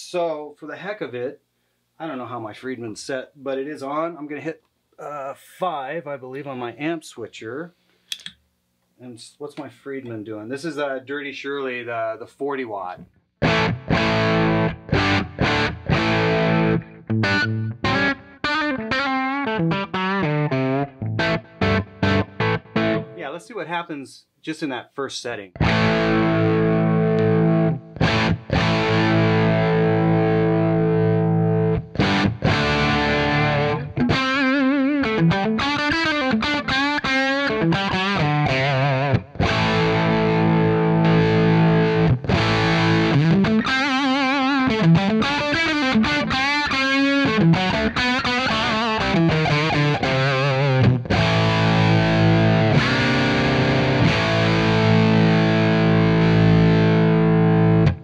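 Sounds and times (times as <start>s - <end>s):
overdriven electric guitar: 13.4s - 23.2s, 25.6s - 58.0s.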